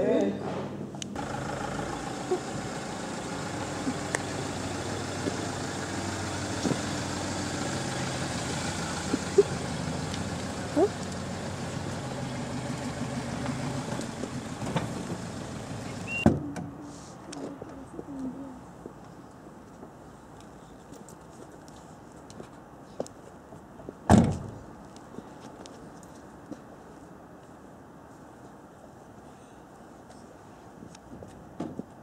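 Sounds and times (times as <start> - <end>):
van engine running: 1.2 - 16.2.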